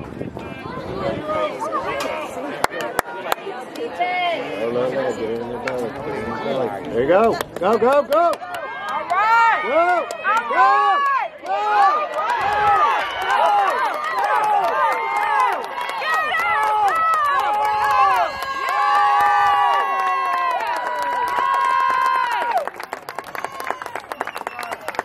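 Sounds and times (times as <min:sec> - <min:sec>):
young voices shouting: 0:08.2 - 0:22.6.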